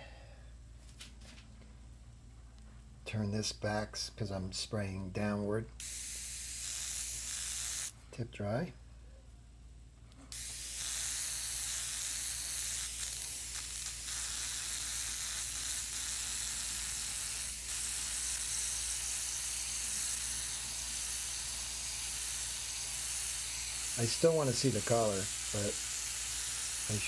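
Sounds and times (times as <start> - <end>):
airbrush spraying hiss: 10.3 - 27.0.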